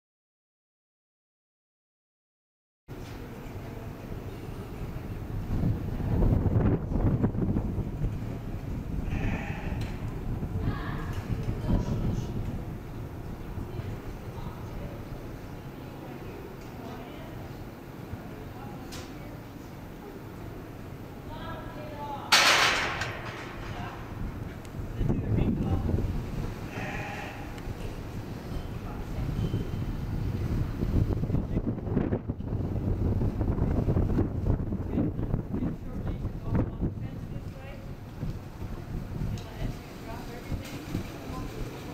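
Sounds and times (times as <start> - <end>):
steady low rumble: 3.6 - 18.7, 19.9 - 40.6
wind buffeting microphone: 4.7 - 15.7, 22.4 - 41.9
sheep bleating: 9.0 - 9.9, 26.7 - 27.6.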